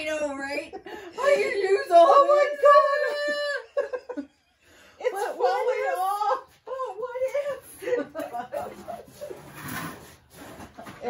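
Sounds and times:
woman laughing: 0:00.5 - 0:04.4, 0:05.1 - 0:09.4.

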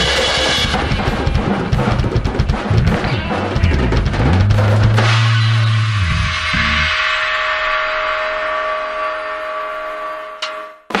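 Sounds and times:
rock band final chord: 0:04.9 - 0:08.2.

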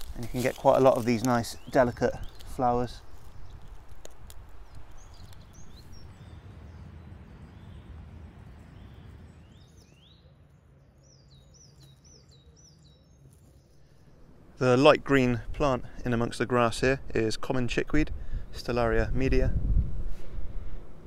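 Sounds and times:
low outdoor rumble: 0:00.0 - 0:10.9, 0:13.8 - 0:21.0
songbird chirping: 0:00.0 - 0:16.9.

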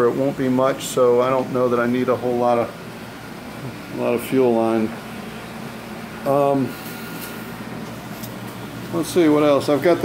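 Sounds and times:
room noise hum: 0:00.0 - 0:10.0.

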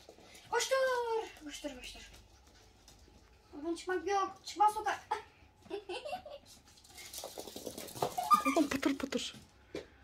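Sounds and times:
puppy claws clicking on floor: 0:06.5 - 0:09.9.

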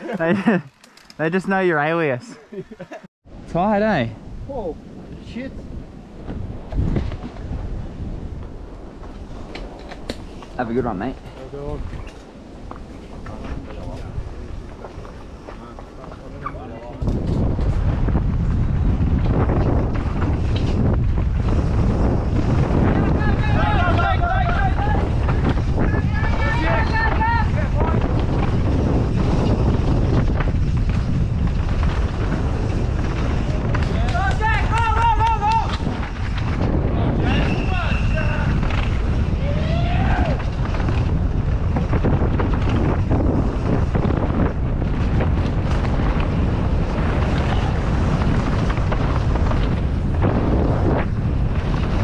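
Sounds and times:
wind on microphone: 0:03.2 - 0:52.0
bike rattling over ground: 0:06.0 - 0:52.0.

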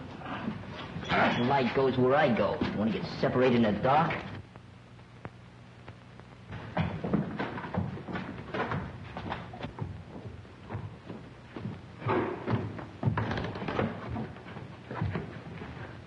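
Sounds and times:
shuffling footsteps: 0:05.9 - 0:16.0
bumps and knocks: 0:06.5 - 0:16.0.

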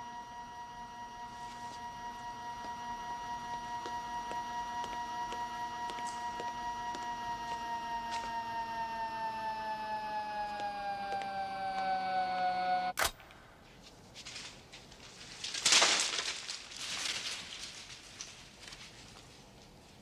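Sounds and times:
sustained electronic chord: 0:00.0 - 0:13.0.

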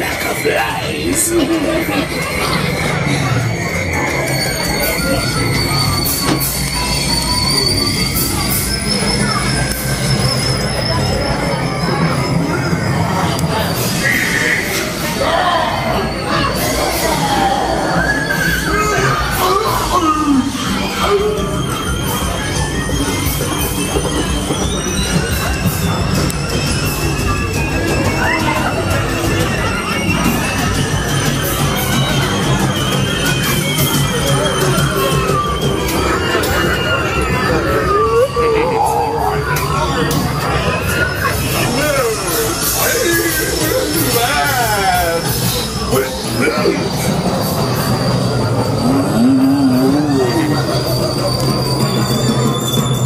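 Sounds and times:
high whining tones: 0:01.9 - 0:53.0.

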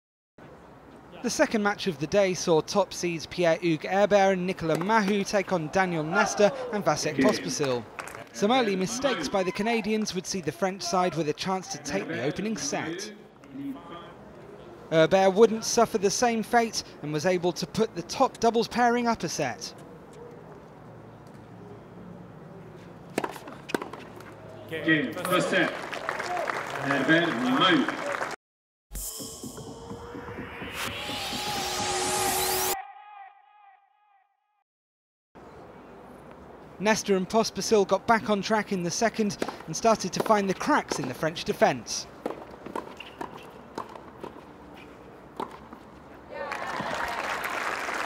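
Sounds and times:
low crowd background: 0:13.2 - 0:14.9
tennis ball strikes: 0:23.1 - 0:24.3
spectators cheering and shouting: 0:46.3 - 0:47.6.

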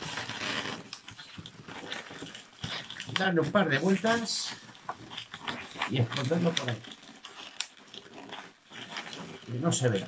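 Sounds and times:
balloon squeaks: 0:00.0 - 0:10.0.

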